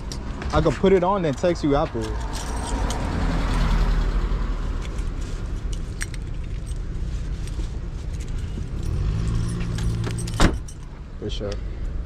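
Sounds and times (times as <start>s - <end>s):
car driving past: 2.5s - 4.8s.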